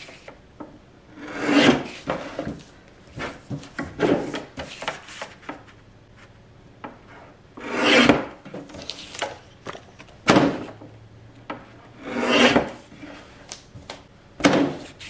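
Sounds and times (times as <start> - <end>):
paper sheets rustling and clicking: 8.6 - 10.2.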